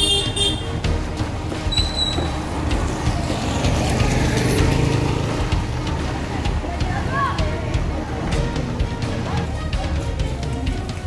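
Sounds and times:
vehicle engines running: 0:00.0 - 0:11.0.

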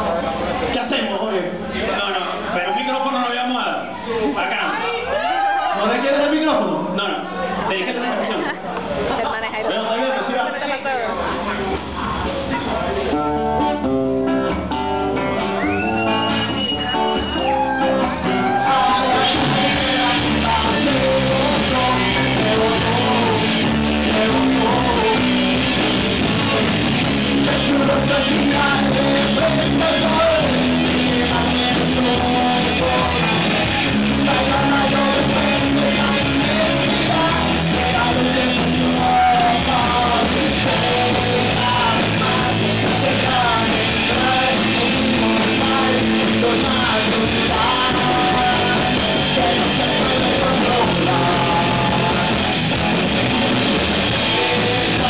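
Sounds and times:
rock band playing live: 0:10.8 - 0:55.0
strummed guitar: 0:11.2 - 0:55.0.

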